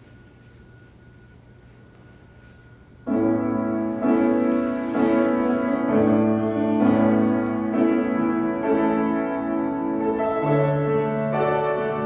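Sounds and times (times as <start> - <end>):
faint steady hum: 0.0 - 12.0
grand piano chords: 0.0 - 12.0.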